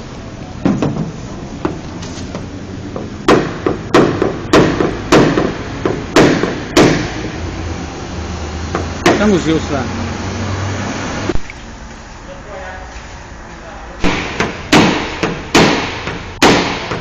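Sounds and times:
hammer knocking on sheet metal: 2.9 - 7.2, 8.7 - 9.4, 14.0 - 17.0.

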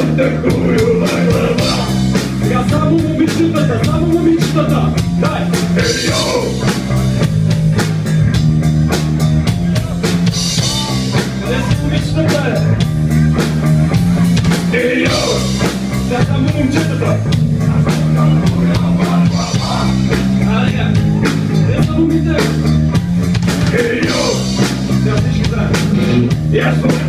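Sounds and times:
man singing into microphone: 0.0 - 4.4, 5.8 - 6.6, 23.7 - 25.8, 26.5 - 27.0
bass notes: 0.0 - 27.0
drum kit: 0.0 - 27.0
electric guitars: 0.0 - 27.0.

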